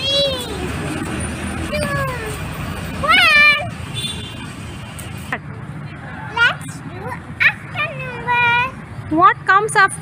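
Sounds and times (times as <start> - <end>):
child's high-pitched call: 0.0 - 0.7, 1.7 - 2.4.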